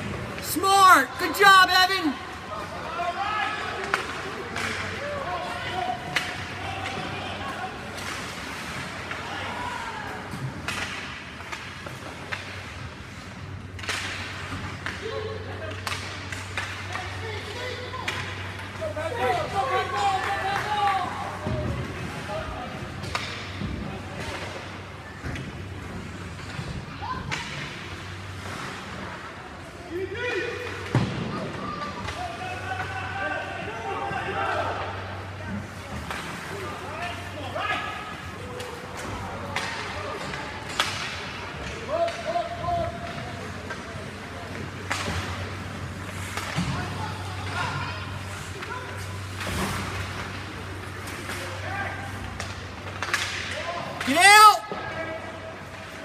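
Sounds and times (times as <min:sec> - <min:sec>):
hockey sticks and puck clacking: 0:00.0 - 0:28.3, 0:30.4 - 0:33.2, 0:34.6 - 0:56.0
people shouting: 0:53.6 - 0:55.0.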